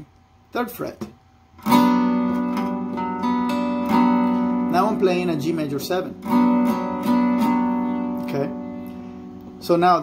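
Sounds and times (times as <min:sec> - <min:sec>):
archtop guitar strumming a chord: 0:01.6 - 0:10.0.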